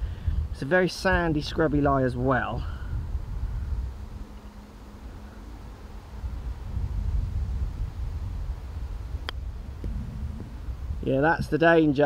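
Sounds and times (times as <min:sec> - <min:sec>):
wind buffeting microphone: 0:00.0 - 0:12.0
golf club striking ball: 0:09.2 - 0:10.7.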